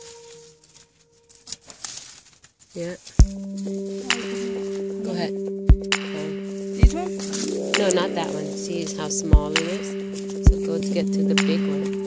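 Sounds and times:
corn husk tearing: 0:01.4 - 0:02.7
background music: 0:02.8 - 0:12.0
wavering voice: 0:03.6 - 0:12.0.

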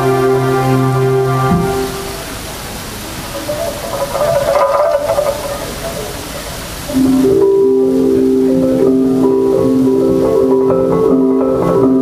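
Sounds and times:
held synthesizer chord: 0:00.0 - 0:02.5, 0:06.9 - 0:12.0
cluster of higher tones: 0:00.0 - 0:12.0
steady rushing noise: 0:00.0 - 0:12.0.

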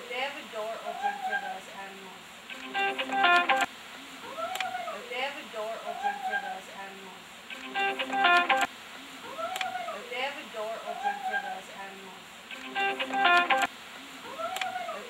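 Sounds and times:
wavering pitched calls: 0:02.5 - 0:03.7, 0:07.5 - 0:08.7, 0:12.5 - 0:13.7
burst of stacked tones: 0:07.5 - 0:08.7, 0:12.5 - 0:13.7.

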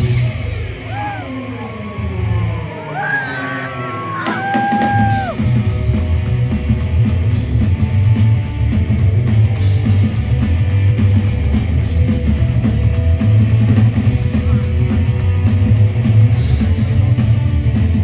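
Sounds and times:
band playing live: 0:00.0 - 0:18.0.

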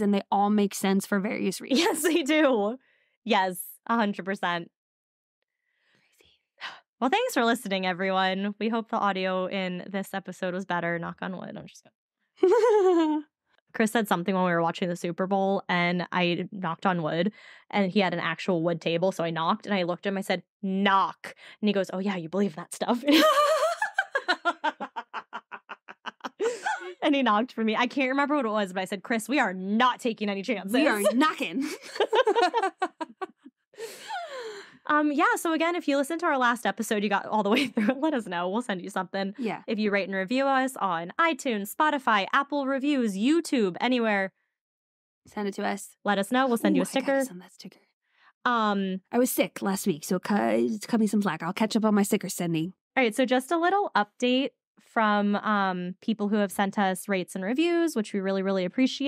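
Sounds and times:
woman laughing: 0:01.7 - 0:02.5, 0:12.4 - 0:13.2, 0:23.0 - 0:27.0, 0:30.6 - 0:34.7, 0:37.5 - 0:38.1, 0:46.5 - 0:47.3
faint breath: 0:02.8 - 0:03.2, 0:05.6 - 0:06.8, 0:48.1 - 0:48.4
woman sighing: 0:26.4 - 0:27.0, 0:33.8 - 0:34.8
person whispering: 0:30.6 - 0:31.3, 0:39.4 - 0:39.6, 0:46.5 - 0:47.7.

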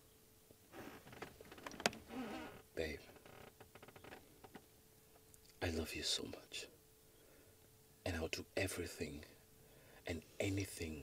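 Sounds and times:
soft wordless vocal sound: 0:05.4 - 0:11.0.

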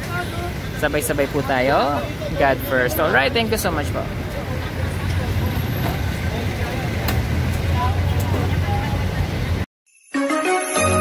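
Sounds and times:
vehicle engine hum: 0:00.0 - 0:09.7.

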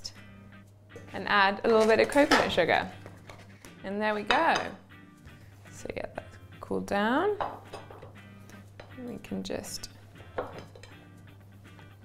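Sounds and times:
soft background music: 0:00.0 - 0:12.0
plate clinking on stone counter: 0:10.4 - 0:11.0.

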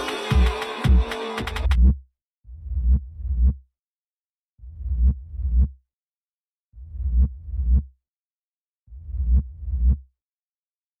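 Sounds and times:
distorted bass thumps: 0:00.3 - 0:02.0, 0:02.6 - 0:03.6, 0:04.7 - 0:05.8.

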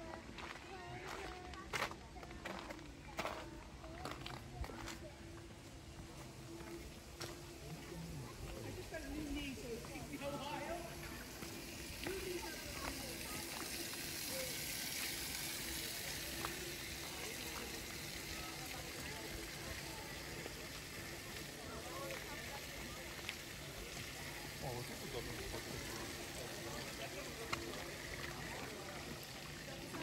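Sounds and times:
faint indistinct voices: 0:00.0 - 0:30.0
outdoor background hiss: 0:05.0 - 0:30.0.

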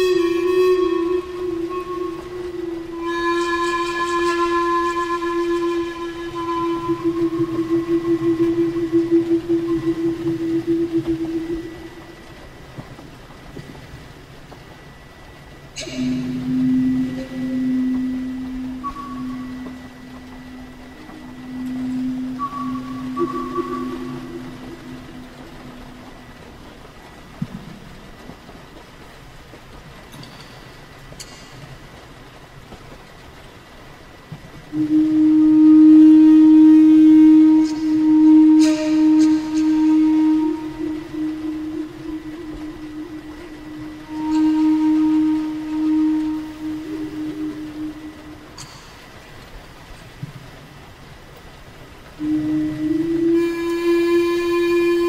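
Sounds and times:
flute playing long notes: 0:00.0 - 0:29.5, 0:33.3 - 0:55.0.

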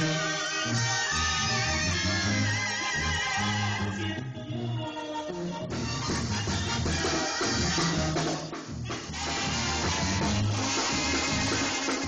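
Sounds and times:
brass band music with drums: 0:00.0 - 0:12.0.

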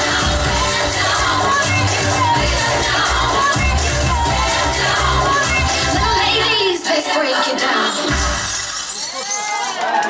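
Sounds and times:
dance music: 0:00.0 - 0:10.0
audience cheering: 0:08.9 - 0:10.0.

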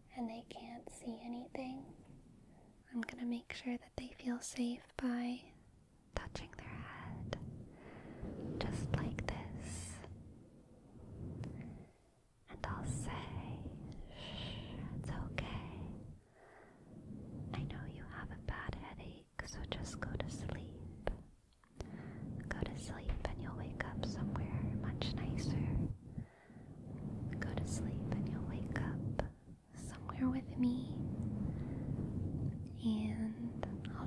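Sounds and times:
soft rustling and touching: 0:06.2 - 0:16.2, 0:17.0 - 0:34.0.

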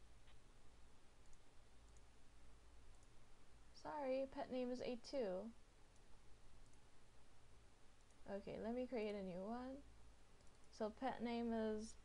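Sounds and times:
faint computer mouse clicks: 0:05.9 - 0:06.8, 0:10.4 - 0:10.8.

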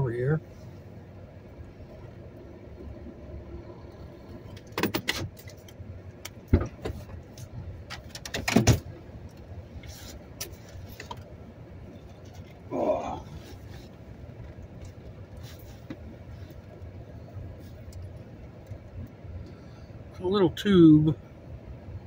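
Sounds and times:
vehicle engine idling: 0:00.0 - 0:22.0
clicks and clunks in cab: 0:04.3 - 0:11.3, 0:13.6 - 0:17.0.

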